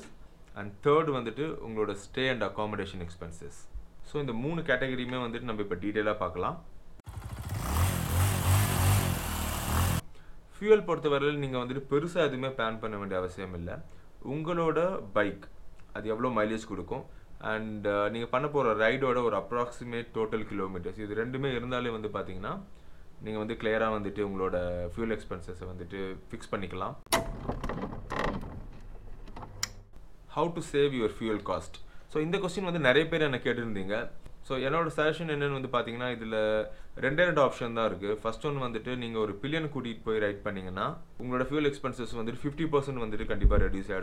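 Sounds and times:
motorcycle engine running: 7.0 - 10.0.

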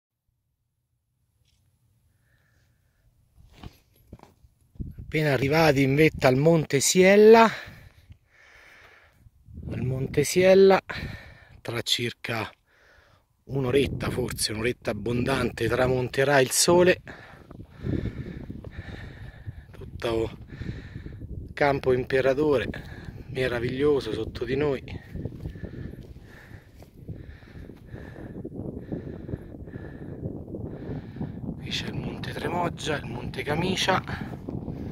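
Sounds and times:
wind buffeting microphone: 4.7 - 6.4, 9.2 - 11.4, 13.5 - 34.9.

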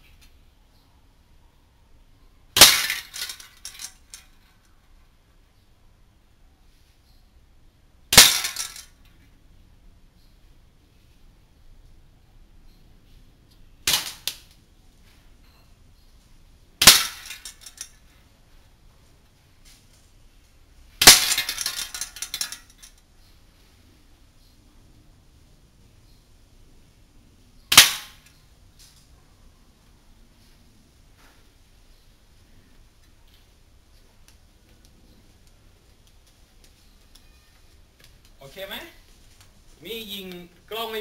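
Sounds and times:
airsoft rifle shot: 2.6 - 3.3, 8.1 - 8.8, 13.8 - 14.4, 16.8 - 17.4, 21.0 - 21.6, 27.7 - 28.2
metallic hit on a can: 16.8 - 18.0
tin can target clinking: 16.8 - 18.0, 21.0 - 22.8.

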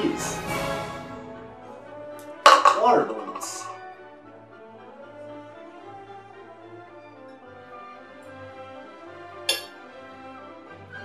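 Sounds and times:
background music: 0.0 - 11.0
plastic tub knocking on table: 2.5 - 3.8.

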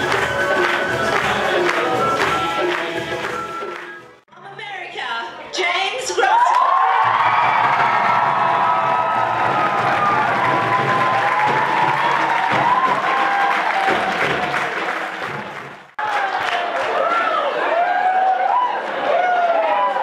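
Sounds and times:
audience applauding and cheering: 0.0 - 4.2, 6.3 - 20.0.

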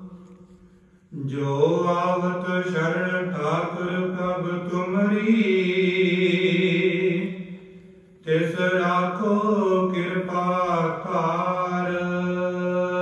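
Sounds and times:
devotional singing: 1.1 - 7.6, 8.2 - 13.0.

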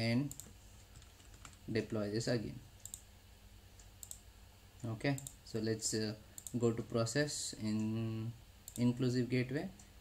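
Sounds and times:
computer mouse clicks: 0.3 - 1.6, 2.8 - 3.1, 3.8 - 4.2, 5.1 - 5.4, 6.4 - 7.0, 8.6 - 8.9.

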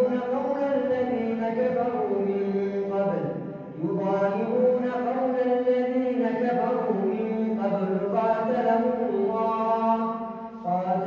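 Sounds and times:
man chanting recitation: 0.0 - 11.0.

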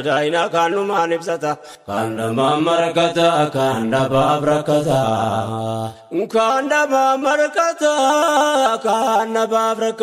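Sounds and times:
man singing devotional chant: 0.0 - 10.0.

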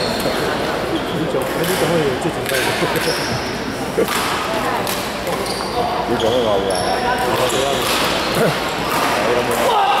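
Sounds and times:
voices chattering: 0.0 - 10.0
sneakers squeaking on court: 5.2 - 8.9.

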